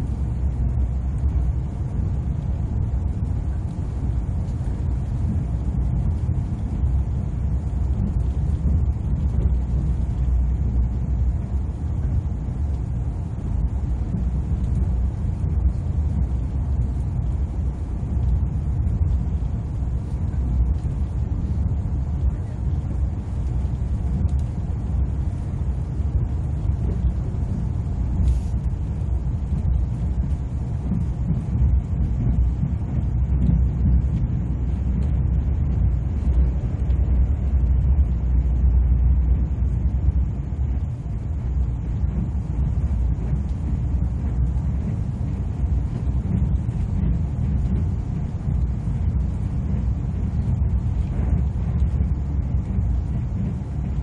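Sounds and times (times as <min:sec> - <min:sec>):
train rumble inside cabin: 0:00.0 - 0:54.0.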